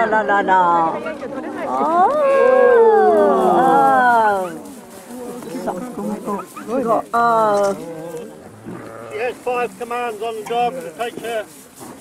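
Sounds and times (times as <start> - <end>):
sheep bleating: 7.4 - 9.8.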